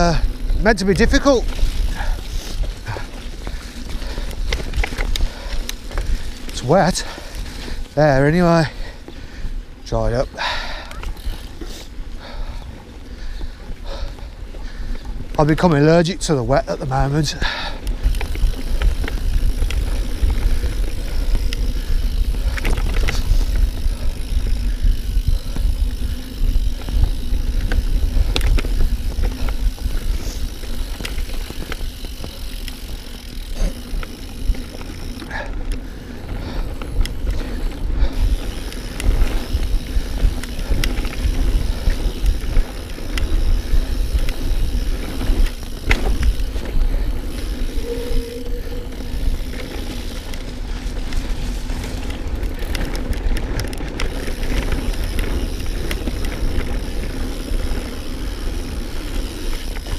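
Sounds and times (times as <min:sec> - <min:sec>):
bike clicks and rattles: 0:00.0 - 0:59.9
tyres running on dirt: 0:00.0 - 0:59.9
wind rumbling on microphone: 0:17.4 - 0:59.9.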